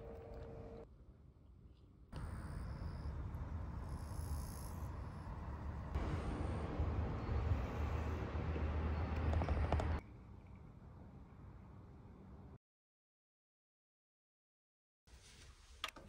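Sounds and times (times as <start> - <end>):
high insect calls: 2.2 - 5.7.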